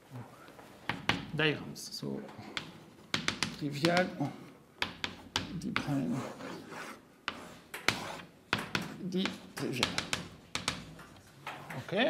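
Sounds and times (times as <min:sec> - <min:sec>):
chalk strokes and taps: 0:04.8 - 0:11.9
chalk scratching on blackboard: 0:05.0 - 0:10.8.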